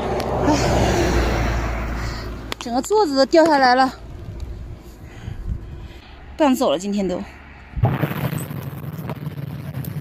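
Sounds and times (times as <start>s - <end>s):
bicycle rolling on road: 1.6s - 6.9s, 7.8s - 10.0s.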